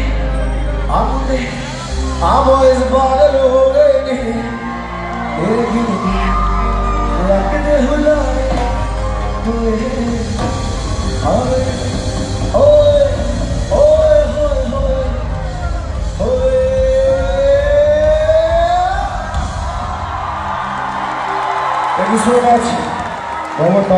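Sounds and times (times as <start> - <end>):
man singing long notes: 0.0 - 19.3
live band music: 0.0 - 23.9.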